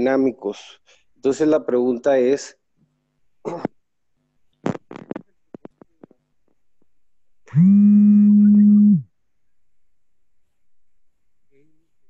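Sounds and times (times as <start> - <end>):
loud steady buzzing tone: 7.5 - 9.1.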